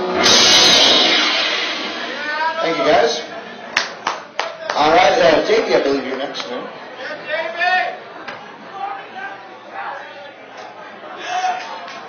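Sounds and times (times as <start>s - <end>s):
loud rock music: 0.0s - 3.4s.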